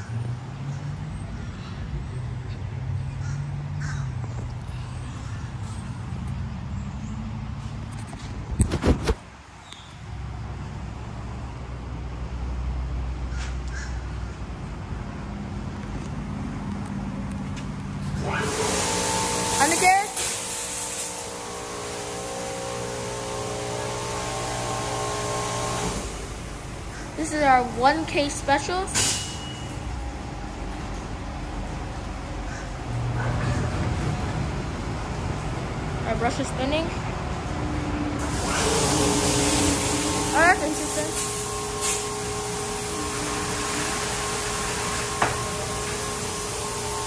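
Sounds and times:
car wash machinery humming: 0:14.4 - 0:47.0
machinery hiss: 0:18.2 - 0:30.4, 0:38.2 - 0:47.0.

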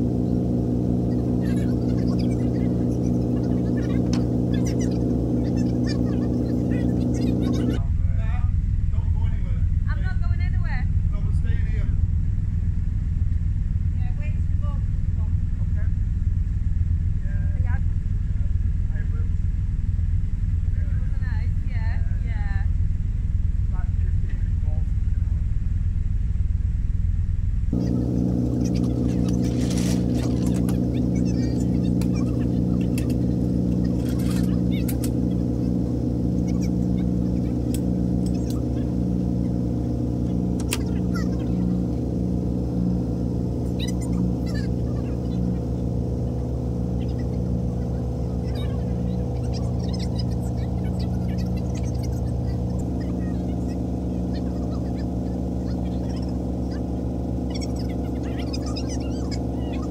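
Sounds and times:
boat engine idling: 0:00.0 - 0:59.9.

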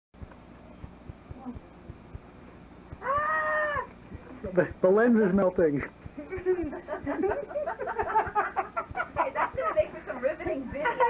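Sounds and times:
meow-like call: 0:03.0 - 0:03.9.

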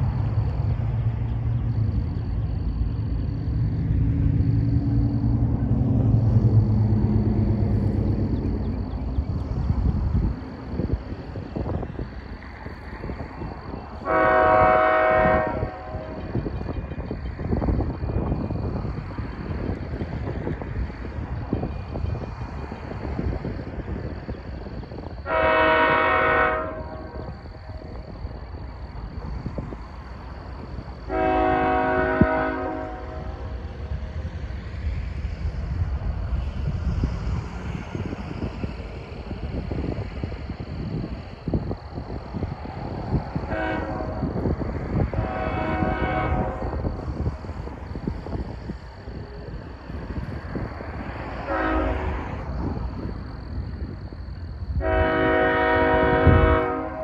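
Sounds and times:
low gusty rumble: 0:00.0 - 0:57.0
locomotive air horn blasts: 0:14.0 - 0:16.3, 0:25.2 - 0:27.3, 0:31.1 - 0:33.4, 0:43.5 - 0:44.4, 0:45.1 - 0:46.8, 0:51.4 - 0:52.2, 0:54.8 - 0:57.0.

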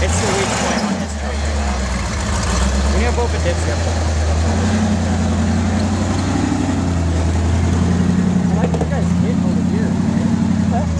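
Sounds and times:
pickup engine running at low revs: 0:00.0 - 0:10.9.

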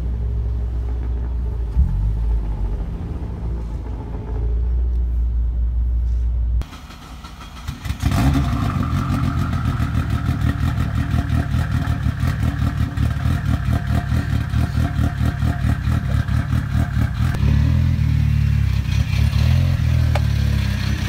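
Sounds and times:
car engine idling loudly: 0:06.6 - 0:17.4.

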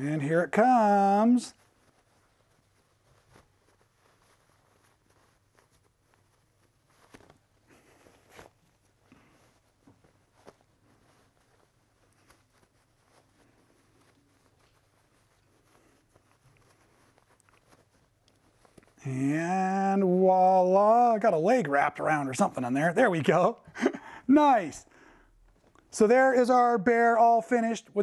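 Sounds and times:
faint fabric rustling: 0:00.0 - 0:28.0.

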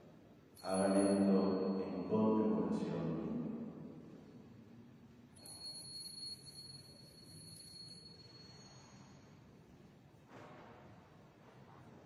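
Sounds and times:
faint altar bell ringing: 0:00.5 - 0:04.2, 0:05.3 - 0:09.8.

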